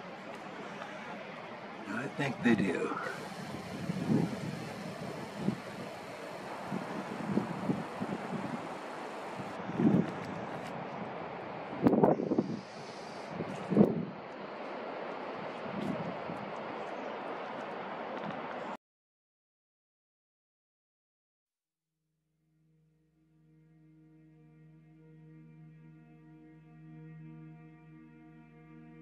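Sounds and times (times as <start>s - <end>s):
wind buffeting microphone: 1.9s - 18.7s.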